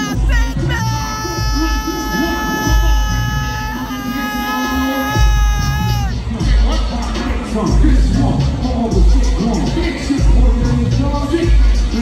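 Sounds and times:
deep bass beats: 0:00.0 - 0:12.0
live concert music: 0:00.0 - 0:12.0.

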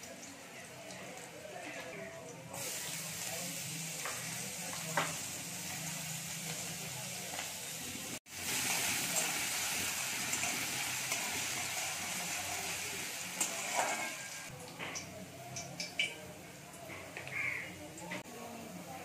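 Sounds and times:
potatoes sizzling in hot oil: 0:00.0 - 0:18.0
spatula stirring against pan: 0:08.5 - 0:14.5.

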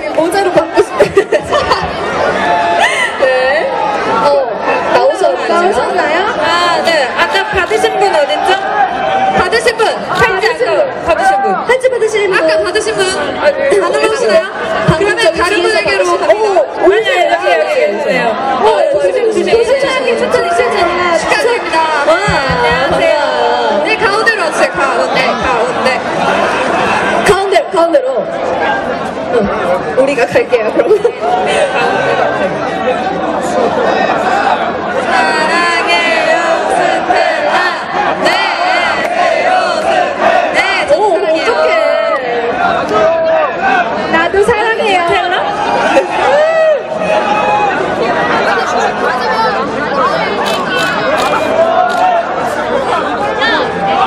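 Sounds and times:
crowd chatter in large hall: 0:00.0 - 0:54.0
voices talking and calling out: 0:00.0 - 0:54.0.

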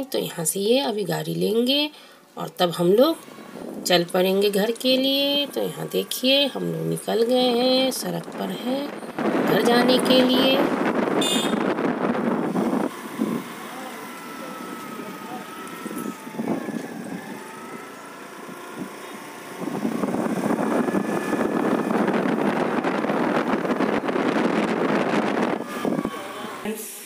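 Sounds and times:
vehicle road and wind noise: 0:00.0 - 0:27.0.

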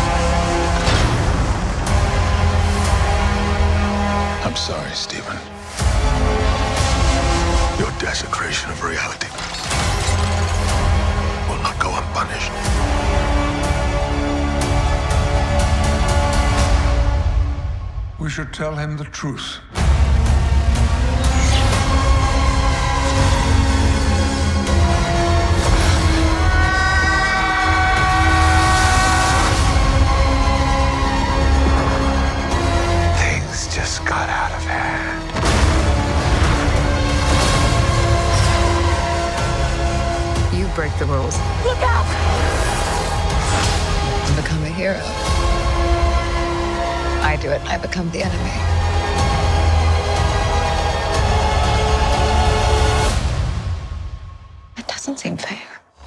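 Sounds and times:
film music: 0:00.0 - 0:56.0.

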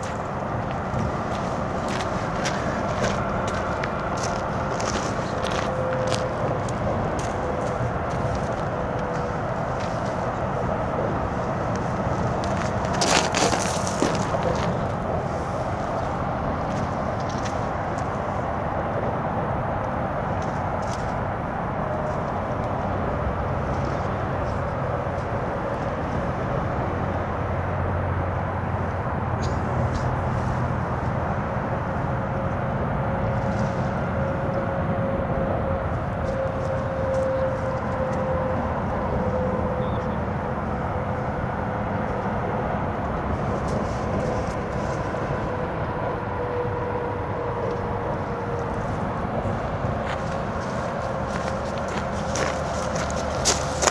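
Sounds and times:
low engine rumble: 0:00.0 - 0:53.9.

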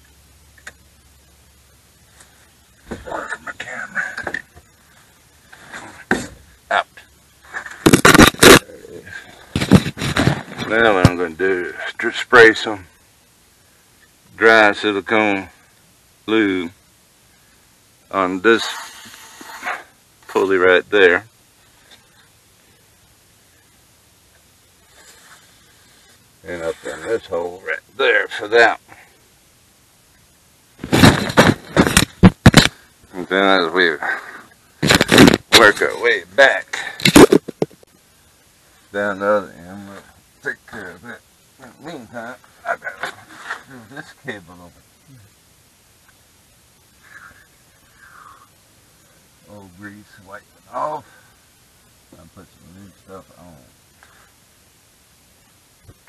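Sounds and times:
loud short scraping and rustling: 0:09.4 - 0:11.1, 0:18.6 - 0:19.8, 0:24.8 - 0:27.1, 0:30.8 - 0:32.8, 0:43.0 - 0:43.7.

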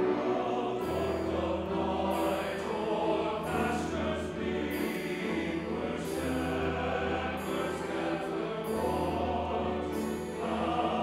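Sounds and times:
chamber orchestra: 0:00.0 - 0:11.0
choir singing: 0:00.0 - 0:11.0.

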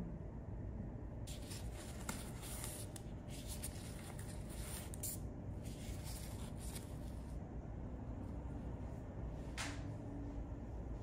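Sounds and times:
gloves crinkling: 0:01.3 - 0:07.4.

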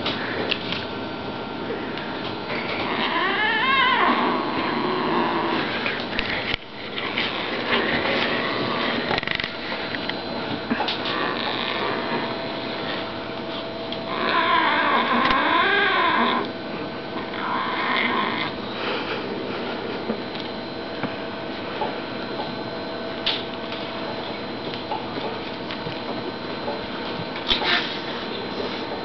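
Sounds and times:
kitten growling: 0:02.5 - 0:05.9, 0:10.7 - 0:12.4, 0:14.1 - 0:16.5, 0:17.2 - 0:18.6
kitten crying: 0:02.8 - 0:05.6.

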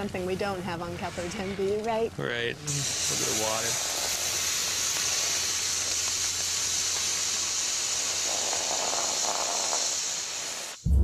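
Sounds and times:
water hissing on hot lava: 0:02.7 - 0:10.8.

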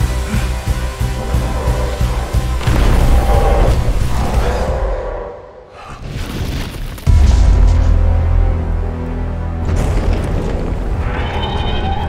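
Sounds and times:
film score music: 0:00.0 - 0:06.4, 0:07.0 - 0:12.0.

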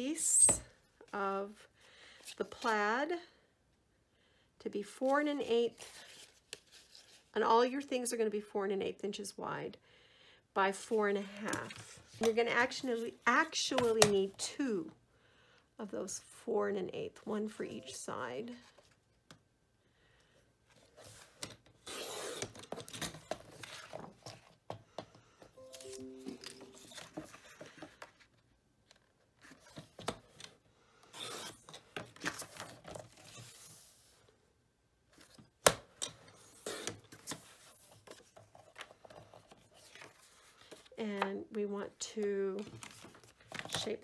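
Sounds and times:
paper being handled: 0:25.6 - 0:28.1.

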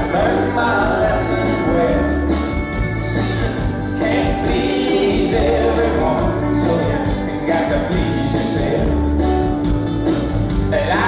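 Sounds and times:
several voices singing together: 0:00.0 - 0:02.2, 0:03.1 - 0:09.0
lead vocal singing: 0:00.0 - 0:09.2, 0:10.7 - 0:11.0
country-rock band playing: 0:00.0 - 0:11.0
strummed acoustic guitars: 0:00.0 - 0:11.0.

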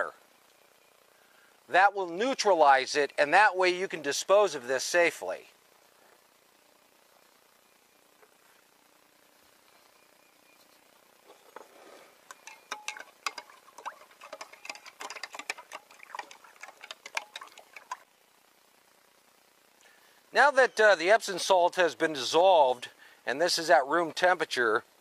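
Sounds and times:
spoon clinking in glass jar: 0:12.3 - 0:18.0.

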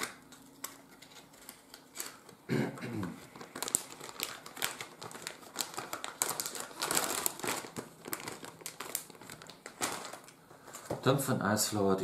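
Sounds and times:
packaging crinkling: 0:00.0 - 0:02.5, 0:03.1 - 0:11.2.

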